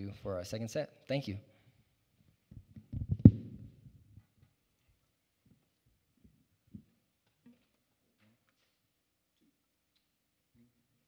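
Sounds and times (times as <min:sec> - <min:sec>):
microphone handling knocks: 0:02.5 - 0:03.9
microphone handling thump: 0:02.8 - 0:03.8.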